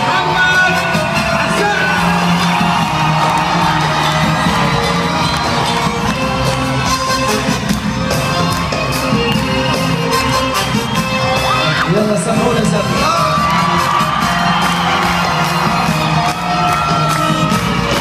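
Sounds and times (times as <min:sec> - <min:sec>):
crowd cheering and whooping: 0:00.0 - 0:18.0
live band playing loud music: 0:00.0 - 0:18.0.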